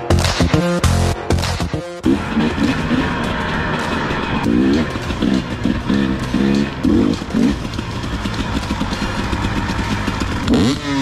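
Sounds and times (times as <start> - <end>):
rock music with chugging rhythm: 0.0 - 10.7
dirt bike engine running: 0.0 - 11.0.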